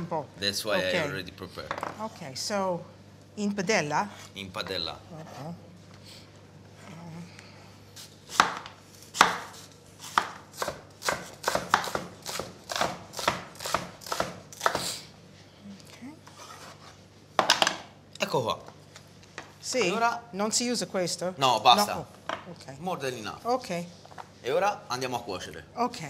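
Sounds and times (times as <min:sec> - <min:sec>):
knife chopping onion on board: 0:08.3 - 0:14.9.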